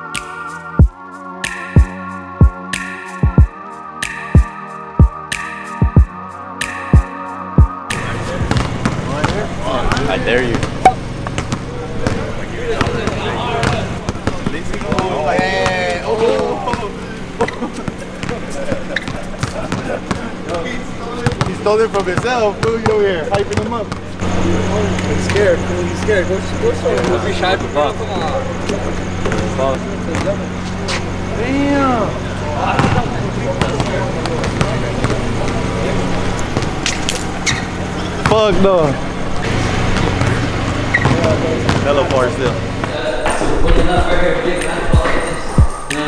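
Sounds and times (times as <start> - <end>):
vehicle engine humming: 8.0 - 15.0, 16.0 - 43.3
basketball dribbled on hard floor: 21.2 - 24.0, 40.0 - 41.9.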